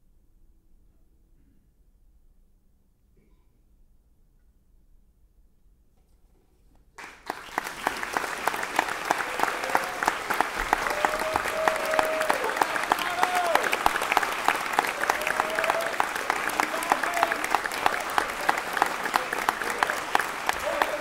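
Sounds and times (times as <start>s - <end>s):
audience applauding: 7.0s - 21.0s.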